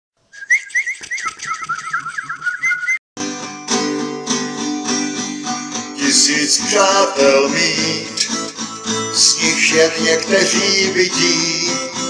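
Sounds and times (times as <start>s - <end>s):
bird-like whistled chirping: 0.3s - 3.0s.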